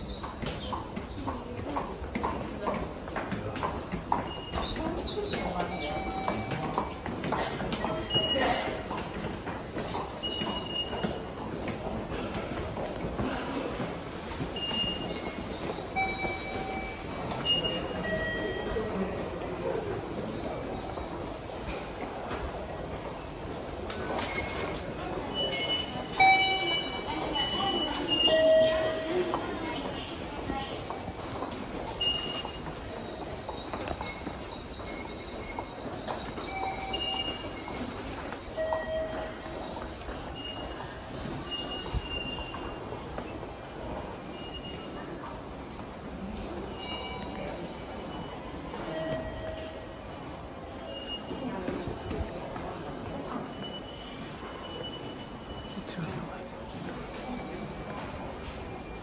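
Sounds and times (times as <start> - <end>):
hubbub of station crowd: 0.0 - 59.0.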